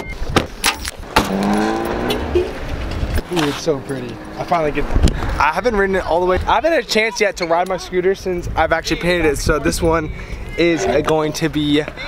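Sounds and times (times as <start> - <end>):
car engine accelerating past: 1.1 - 5.4.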